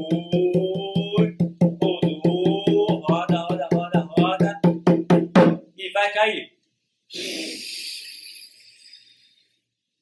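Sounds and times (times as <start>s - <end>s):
man blowing hard breath: 7.1s - 8.6s.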